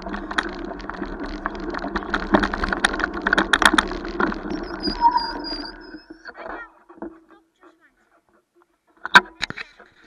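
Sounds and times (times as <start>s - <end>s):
bicycle clicks and knocks: 0.0s - 4.6s
bicycle rolling rumble: 0.0s - 6.4s.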